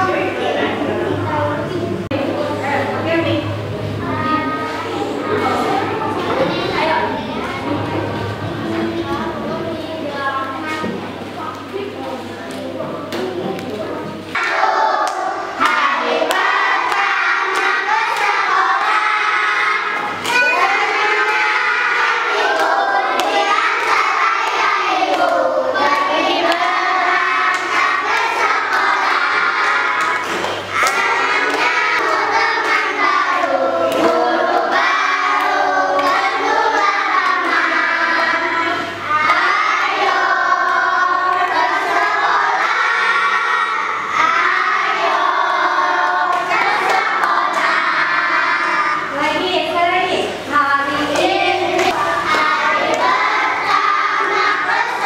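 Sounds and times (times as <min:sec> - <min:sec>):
children singing in unison: 0:14.3 - 0:49.2, 0:50.9 - 0:55.0
hand claps: 0:29.6 - 0:32.8.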